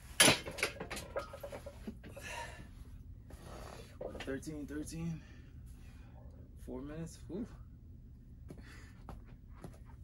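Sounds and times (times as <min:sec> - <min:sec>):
heavy hissing breaths: 0:02.1 - 0:04.0.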